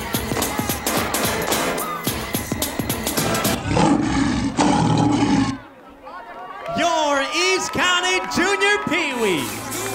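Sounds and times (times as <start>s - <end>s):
music beat: 0.0s - 3.6s
deep growling roar effect: 3.5s - 5.7s.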